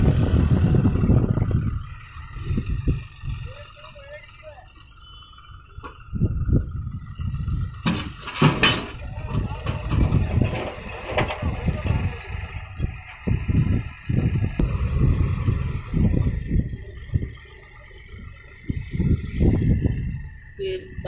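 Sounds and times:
tractor diesel engine under load: 0.0 - 21.0.

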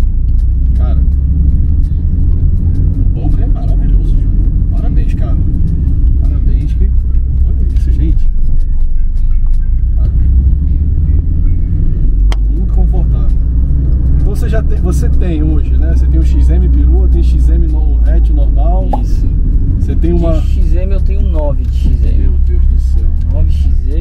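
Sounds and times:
engine and road noise in car: 0.0 - 24.0.

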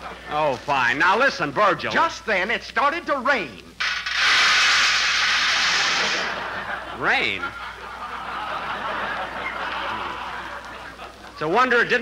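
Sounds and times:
rain hiss: 3.7 - 6.6.

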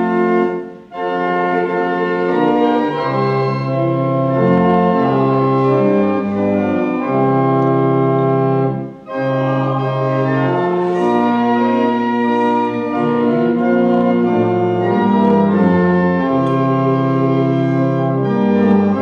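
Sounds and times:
church organ playing slow chords: 0.0 - 19.0.

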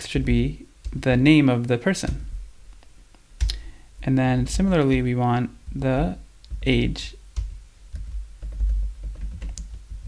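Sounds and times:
steady low hum: 0.0 - 10.0
typing on computer keyboard: 7.4 - 10.0.

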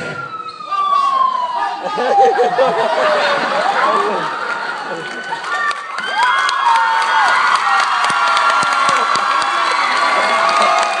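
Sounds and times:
audience cheering and screaming: 0.0 - 11.0
people clapping: 2.4 - 11.0.

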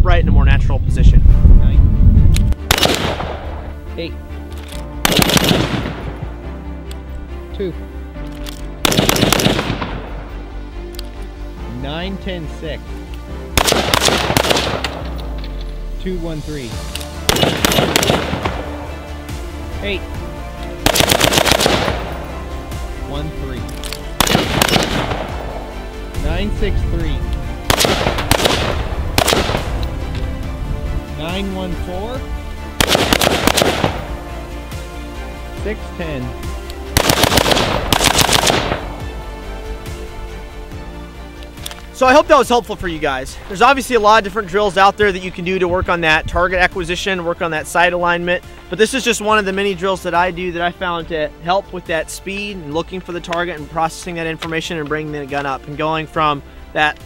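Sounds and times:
rifle gunshots with echo: 2.6 - 3.7, 5.0 - 6.3, 8.8 - 10.2, 13.5 - 15.1, 17.2 - 18.9, 20.8 - 22.3, 24.2 - 25.7, 27.6 - 29.9, 32.8 - 34.1, 36.9 - 39.2.

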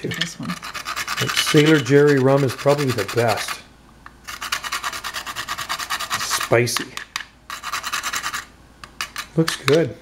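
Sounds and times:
nutmeg grated on metal grater: 0.0 - 3.6, 4.3 - 6.8, 7.5 - 9.4.

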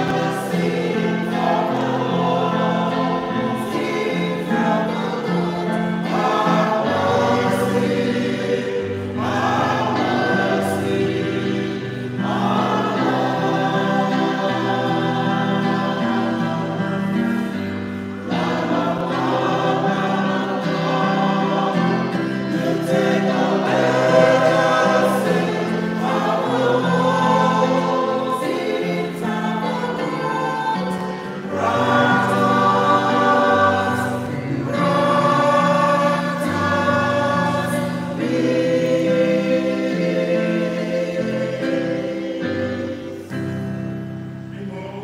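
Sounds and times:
choir singing a hymn: 0.0 - 45.0.

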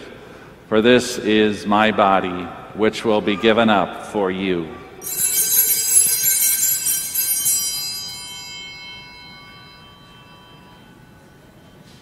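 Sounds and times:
hand-held altar bells ringing: 5.0 - 12.0.

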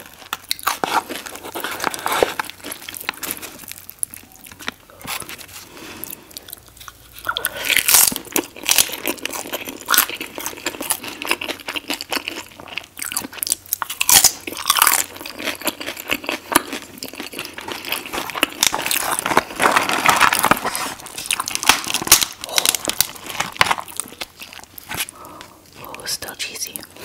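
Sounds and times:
crunching tortilla chips: 0.0 - 26.1.

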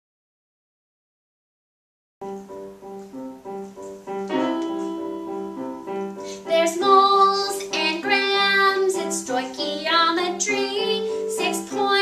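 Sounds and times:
piano accompaniment: 2.2 - 12.0
girl singing into microphone: 6.3 - 12.0.

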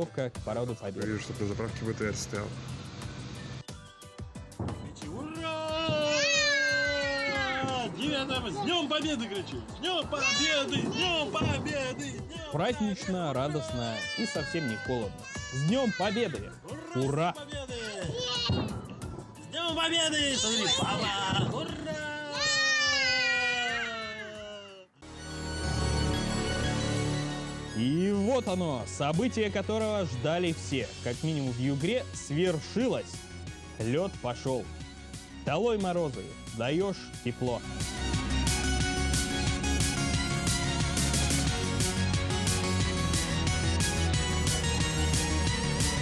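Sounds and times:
fireworks popping: 4.5 - 13.4, 18.4 - 22.3
long wailing cry: 5.6 - 7.6.

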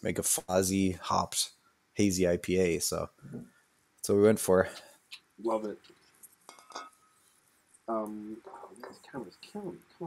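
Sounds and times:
glass clinking: 6.5 - 7.2.

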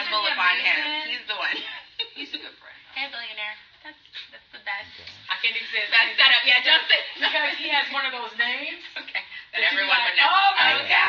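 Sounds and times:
women talking and laughing: 0.0 - 11.0.

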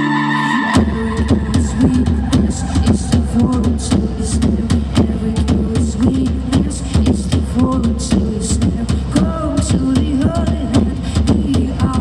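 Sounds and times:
heavy bass: 0.0 - 12.0
drum kit beat: 0.8 - 12.0.

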